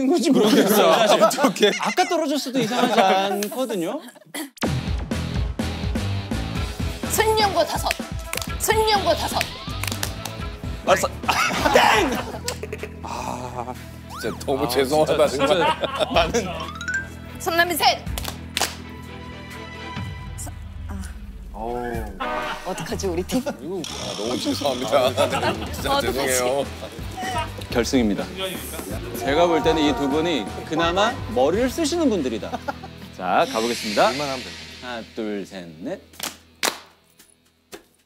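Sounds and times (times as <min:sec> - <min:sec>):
background music with low notes: 0:04.6 - 0:38.0.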